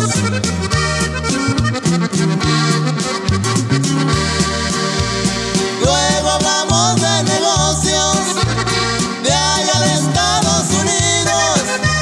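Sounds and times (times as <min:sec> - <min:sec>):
accordion melody: 0:00.0 - 0:12.0
bass line: 0:00.0 - 0:12.0
steady drum beat: 0:00.2 - 0:11.8.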